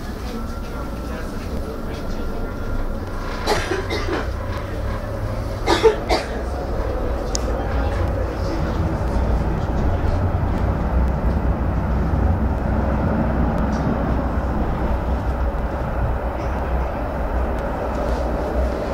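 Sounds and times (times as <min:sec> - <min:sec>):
tram running low rumble: 0:00.0 - 0:18.9.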